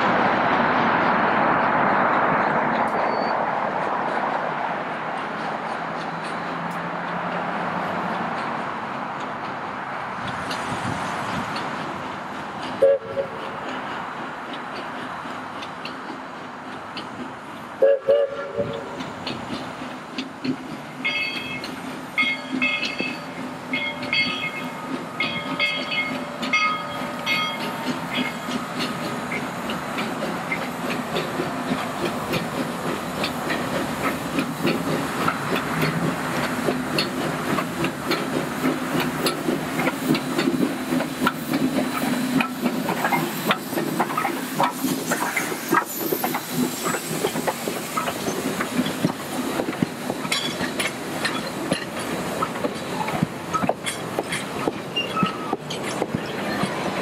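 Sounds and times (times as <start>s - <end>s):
steam locomotive hissing: 0.0s - 57.0s
train wheels clicking over rail joints: 0.0s - 57.0s
locomotive bell ringing: 21.0s - 28.6s.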